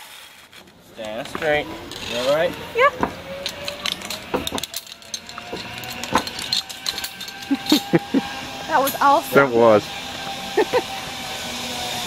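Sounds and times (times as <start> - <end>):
metal clicks of carabiners: 3.4 - 7.9.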